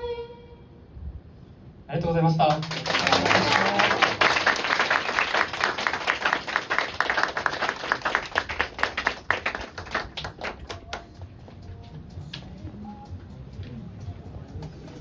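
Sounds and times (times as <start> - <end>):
audience applause: 2.5 - 11.0.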